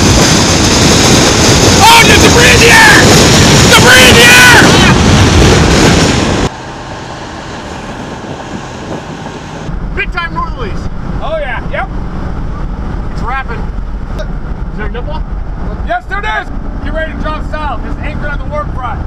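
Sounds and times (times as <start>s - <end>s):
vehicle road and engine rumble: 0.0s - 19.0s
wind buffeting microphone: 0.0s - 19.0s.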